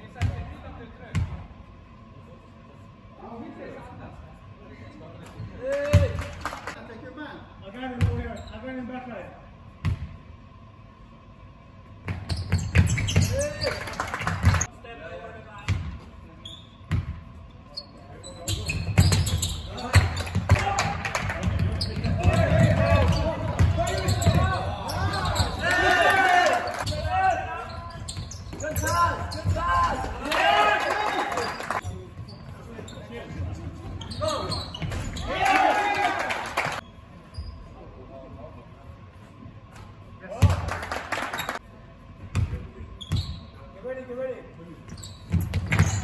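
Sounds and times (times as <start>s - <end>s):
basketball bouncing on court floor: 16.9s - 17.2s, 21.3s - 24.6s, 45.3s - 46.0s
players calling out: 18.5s - 31.8s.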